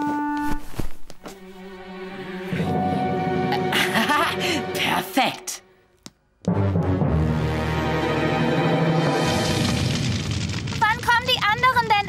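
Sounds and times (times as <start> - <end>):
bonfire rushing flare: 9.2 - 11.4.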